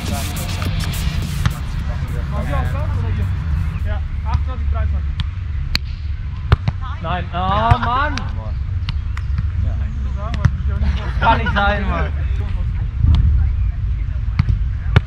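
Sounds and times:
steady low rumble: 0.0s - 15.0s.

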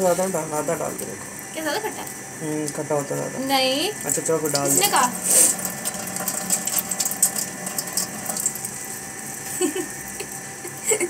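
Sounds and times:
steady hum: 0.0s - 11.0s.

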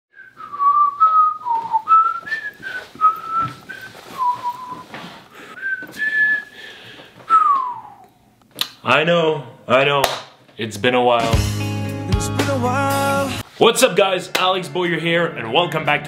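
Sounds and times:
man whistling a tune: 0.1s - 4.9s, 5.6s - 6.5s, 7.3s - 8.0s.

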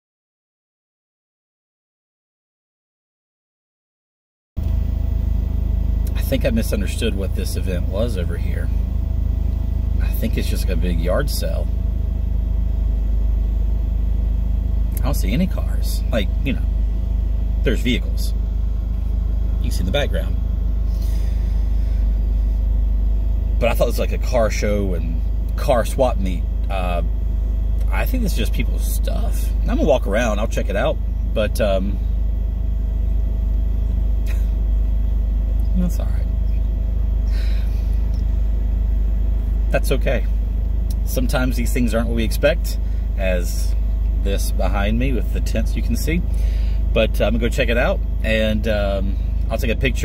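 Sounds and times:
car engine idling: 4.6s - 50.0s.

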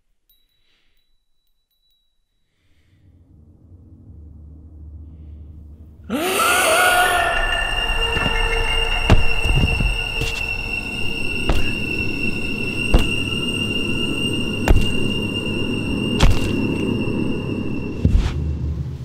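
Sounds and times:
rising shriek into screeching drone: 3.0s - 18.6s
heavy thuds: 8.1s - 15.3s, 16.2s - 16.7s.

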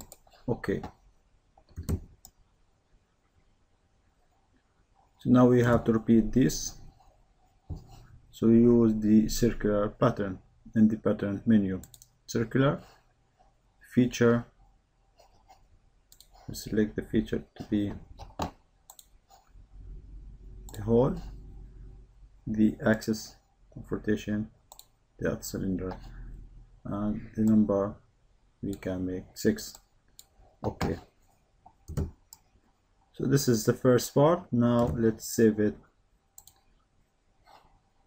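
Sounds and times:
computer mouse clicks: 0.0s - 0.3s, 1.6s - 2.4s, 11.8s - 12.2s, 18.2s - 19.2s, 24.7s - 25.0s, 36.4s - 36.7s
low steady hum: 0.0s - 38.0s.

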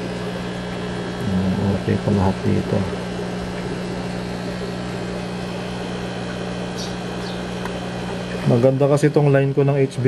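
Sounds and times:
air pump humming: 0.0s - 10.0s.

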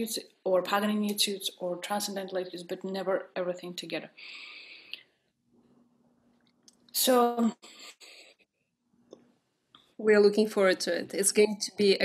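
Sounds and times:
breath into a microphone: 4.2s - 5.1s.

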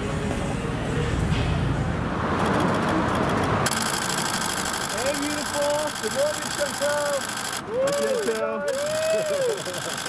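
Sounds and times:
motor running with rapid rattle: 2.4s - 10.0s.

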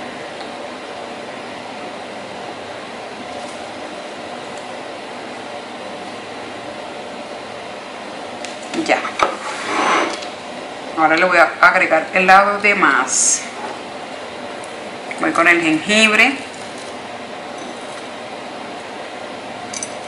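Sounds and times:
air conditioner or fan hum: 0.0s - 20.0s.

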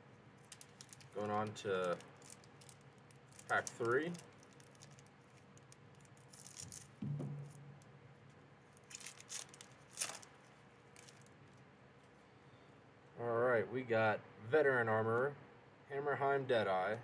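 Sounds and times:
foil wrapper crinkling: 0.4s - 7.0s, 8.7s - 12.1s.

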